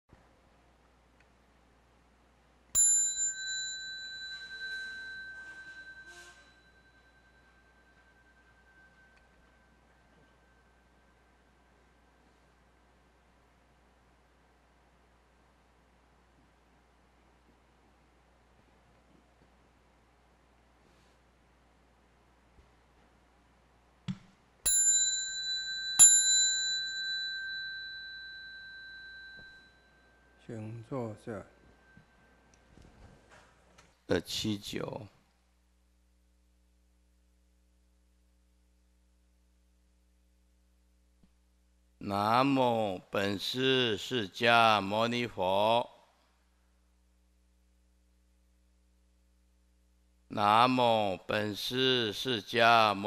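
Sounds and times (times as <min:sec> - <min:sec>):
bowl bell ringing: 0:02.8 - 0:11.4, 0:24.6 - 0:32.5.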